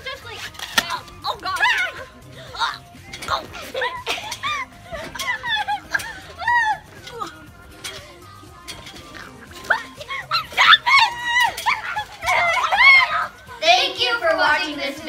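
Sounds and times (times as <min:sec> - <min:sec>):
girls shrieking and laughing: 0:00.0 - 0:13.6.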